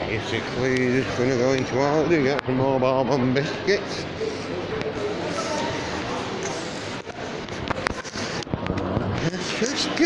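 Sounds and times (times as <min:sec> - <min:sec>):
shopping concourse noise: 0:00.0 - 0:10.0.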